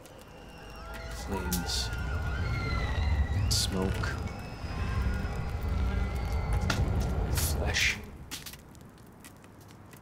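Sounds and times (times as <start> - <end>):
low rumbling drone: 0.4 - 8.3.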